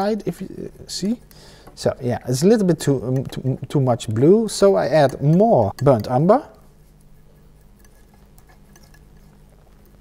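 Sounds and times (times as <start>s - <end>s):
palette knife squishing paint: 0.6s - 10.0s.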